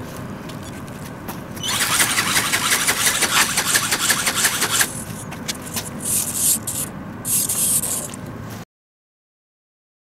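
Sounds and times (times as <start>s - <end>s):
wings flapping in fast pulses: 1.6s - 6.4s
motor and gear drive running: 1.6s - 8.3s.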